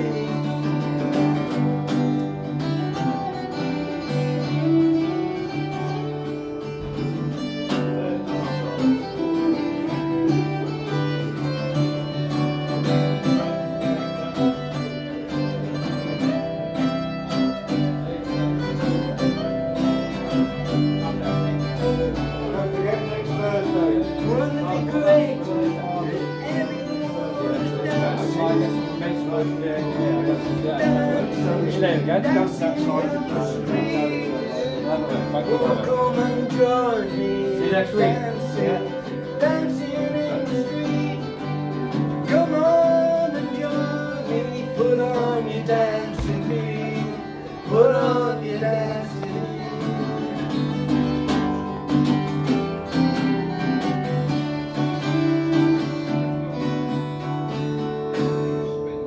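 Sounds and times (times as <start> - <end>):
person singing: 0.0 - 6.3, 18.0 - 51.7
acoustic guitars strumming: 0.0 - 59.0.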